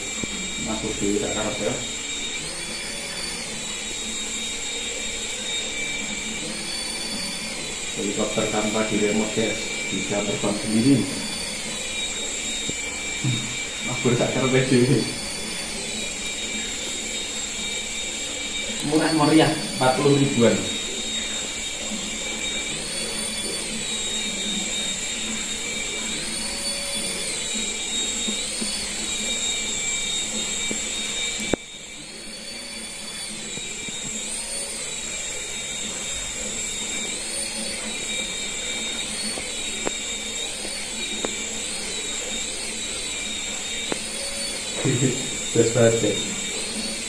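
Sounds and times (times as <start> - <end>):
toy helicopter rotors whining: 0.0 - 47.0.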